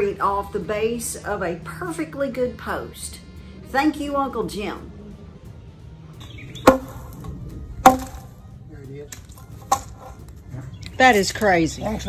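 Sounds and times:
hammer striking concrete: 0:06.6 - 0:08.3, 0:09.2 - 0:10.2.

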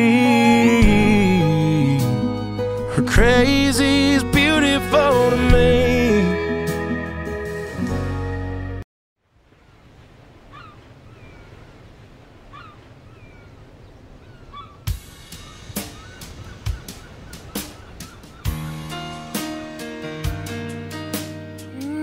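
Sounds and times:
pitched music: 0:00.0 - 0:08.8, 0:14.9 - 0:22.0
outdoor ambience: 0:09.2 - 0:21.2
bird calls: 0:10.4 - 0:20.8.

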